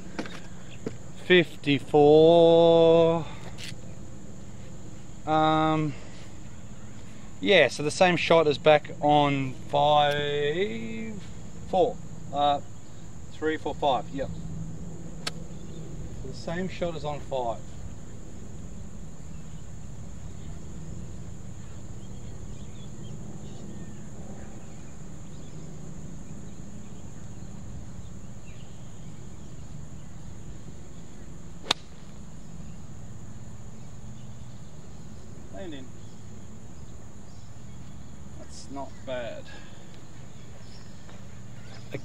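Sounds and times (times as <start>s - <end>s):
low outdoor rumble: 0.0s - 42.0s
steady high-pitched hum: 0.0s - 42.0s
golf club striking ball: 31.6s - 32.2s.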